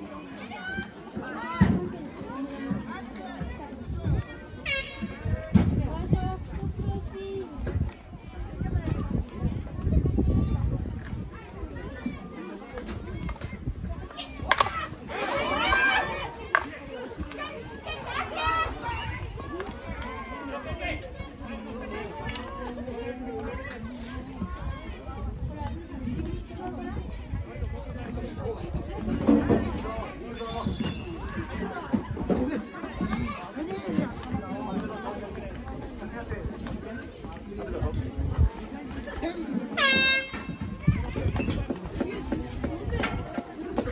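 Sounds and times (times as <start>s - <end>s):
people talking and calling out: 0.0s - 43.9s
air horn blast: 39.8s - 40.4s.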